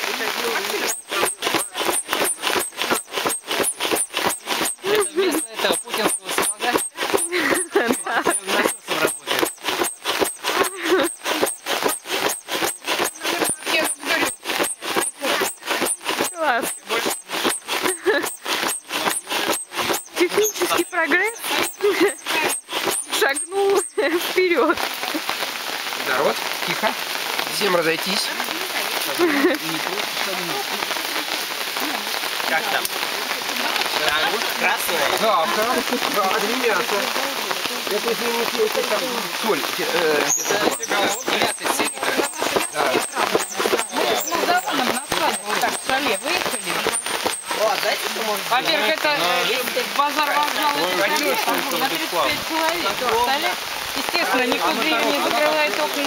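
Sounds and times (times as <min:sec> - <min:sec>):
foot air pump strokes: 0:00.0 - 0:56.0
people chattering: 0:00.0 - 0:56.0
sharp regular clicking: 0:00.5 - 0:25.6, 0:31.7 - 0:49.0.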